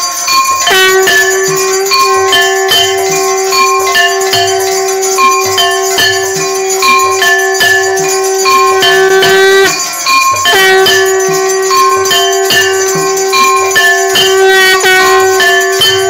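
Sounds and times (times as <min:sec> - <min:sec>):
devotional music: 0:00.0 - 0:16.0
rhythmic bell strikes: 0:00.0 - 0:16.0
held drone note: 0:00.2 - 0:16.0.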